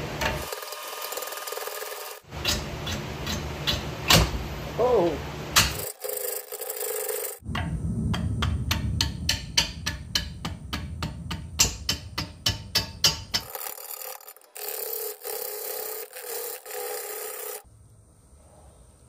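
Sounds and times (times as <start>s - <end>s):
low rumble of lathe: 0.0s - 19.0s
wood lathe knocking: 0.2s - 3.8s, 5.6s - 7.4s, 8.8s - 17.6s
faint hum: 17.6s - 19.0s.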